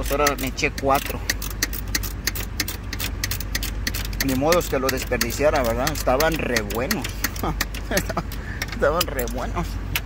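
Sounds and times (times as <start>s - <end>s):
steady low hum: 0.0s - 10.0s
wrench clicking on bolt: 0.0s - 10.0s.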